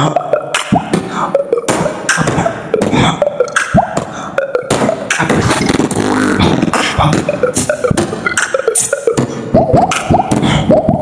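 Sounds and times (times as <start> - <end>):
beatboxing into cupped hands: 0.0 - 11.0.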